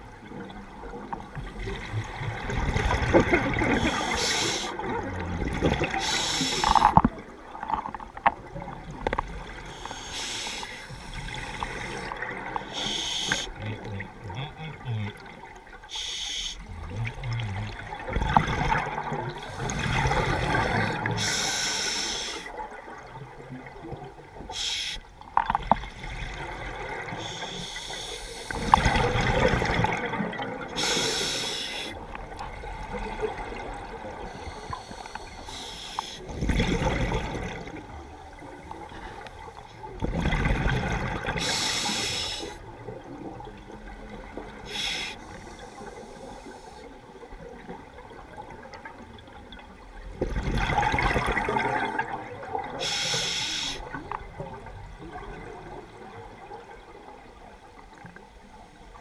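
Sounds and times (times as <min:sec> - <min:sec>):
exhaled bubbles underwater: 0:00.0 - 0:16.0, 0:16.6 - 0:59.0
regulator inhale hiss: 0:03.8 - 0:04.8, 0:06.0 - 0:07.0, 0:09.7 - 0:13.6, 0:15.9 - 0:16.6, 0:20.8 - 0:22.5, 0:24.5 - 0:25.0, 0:27.2 - 0:28.7, 0:30.8 - 0:32.0, 0:34.3 - 0:36.2, 0:41.4 - 0:42.6, 0:44.7 - 0:46.9, 0:52.8 - 0:54.0.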